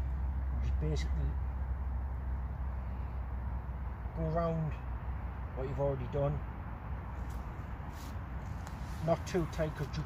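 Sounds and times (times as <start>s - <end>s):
low background rumble: 0.0s - 10.0s
twine rustling around pole: 7.2s - 10.0s.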